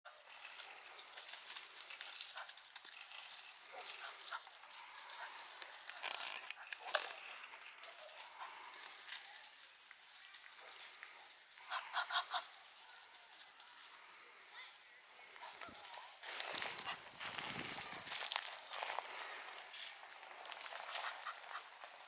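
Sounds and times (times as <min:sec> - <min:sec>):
steady outdoor hiss: 0:00.1 - 0:22.0
plastic bag crinkling: 0:00.3 - 0:11.5, 0:15.2 - 0:22.0.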